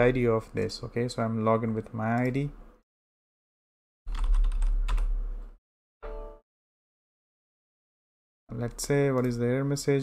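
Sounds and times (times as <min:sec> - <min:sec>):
computer keyboard typing: 0:04.1 - 0:05.1, 0:08.6 - 0:09.4.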